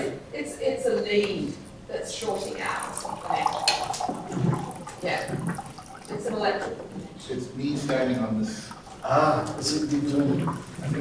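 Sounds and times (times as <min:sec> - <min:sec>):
indistinct talk of people: 0:00.0 - 0:11.0.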